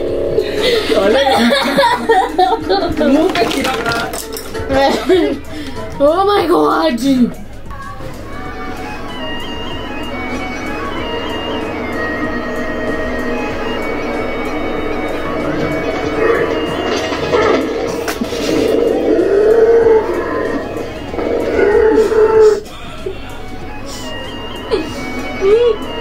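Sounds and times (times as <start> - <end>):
droning musical accompaniment: 0.0 - 26.0
woman singing wavering notes: 24.7 - 26.0.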